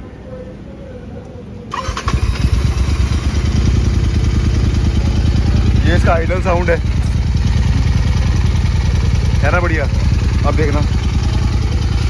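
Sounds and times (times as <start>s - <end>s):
motorcycle engine starting and idling: 1.7s - 12.0s.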